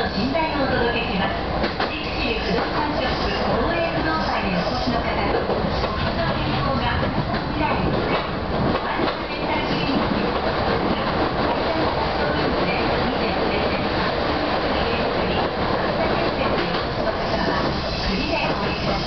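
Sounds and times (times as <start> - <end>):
train wheels on rail: 0.0 - 19.0.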